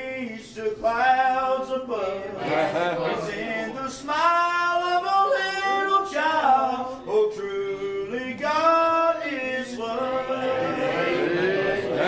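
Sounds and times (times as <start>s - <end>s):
person singing unaccompanied: 0.0s - 12.0s.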